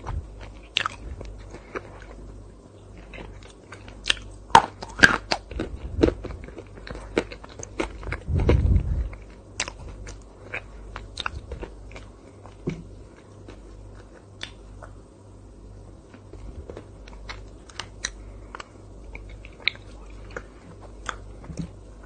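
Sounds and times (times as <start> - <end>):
crunchy chewing: 0.0 - 15.1, 15.9 - 22.0
low rumble: 5.5 - 10.2.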